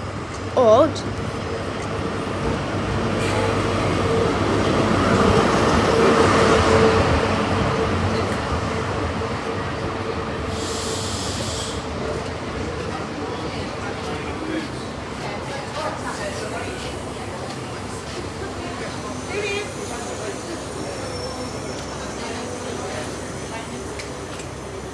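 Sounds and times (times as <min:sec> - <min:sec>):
diesel train passing: 0:00.0 - 0:24.9
train coaches rolling by: 0:00.0 - 0:24.9.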